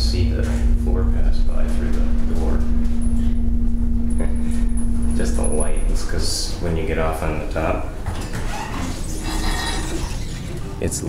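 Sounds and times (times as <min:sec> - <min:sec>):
mechanical rumble: 0:00.0 - 0:11.0
elevator doors sliding open: 0:07.9 - 0:11.0.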